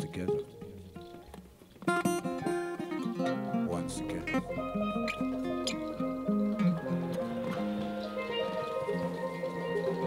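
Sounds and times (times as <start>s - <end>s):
instrumental band music: 0.0s - 10.0s.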